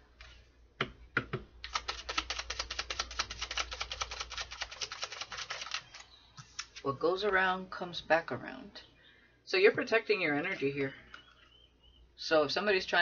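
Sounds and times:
cards being shuffled: 1.6 - 6.8.

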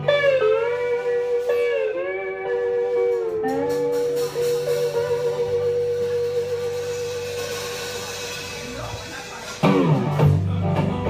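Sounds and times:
band holding high note: 0.0 - 10.5.

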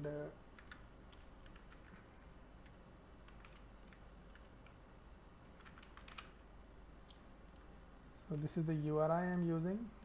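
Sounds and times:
low steady hum: 0.0 - 10.0
keyboard typing: 0.5 - 4.8, 5.5 - 6.4.

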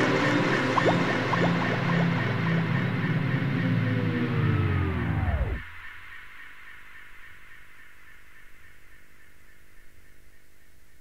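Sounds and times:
record slowing to a stop: 0.0 - 6.2
faint hum: 0.0 - 11.0.

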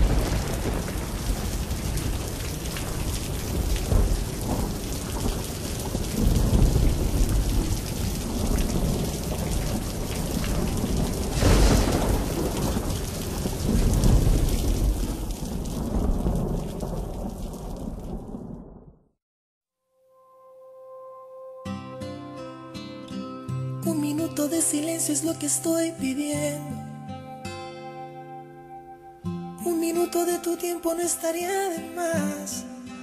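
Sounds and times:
heavy rain: 0.0 - 18.9
rolling thunder: 0.0 - 19.0
sharp thunder crack: 0.0 - 19.0.

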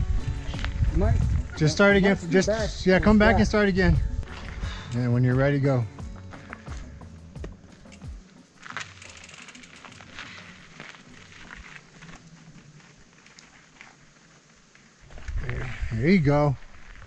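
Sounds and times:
tyres crunching over dirt and stones: 4.2 - 17.0
bike clicks and knocks: 7.4 - 12.3.

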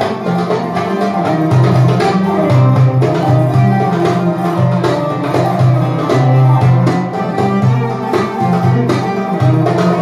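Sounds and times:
hand drum strokes: 0.0 - 10.0
qanun plucked notes: 0.0 - 10.0
violin: 0.0 - 10.0.

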